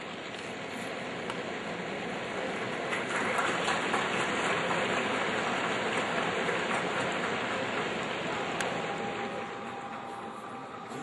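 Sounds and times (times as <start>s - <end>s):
crowd applause: 2.2s - 11.0s.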